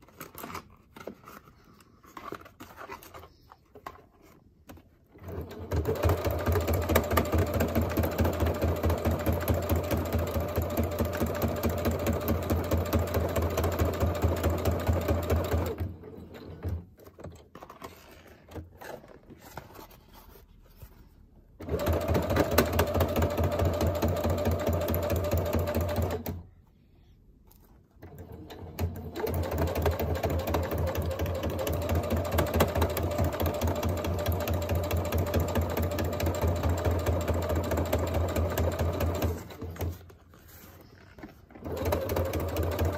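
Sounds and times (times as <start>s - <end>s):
faint handling sounds: 0.0s - 5.2s, 16.8s - 21.6s, 26.4s - 28.2s, 39.6s - 41.8s
sewing machine stitching: 5.1s - 17.4s, 21.6s - 26.4s, 28.0s - 40.1s, 41.6s - 42.9s.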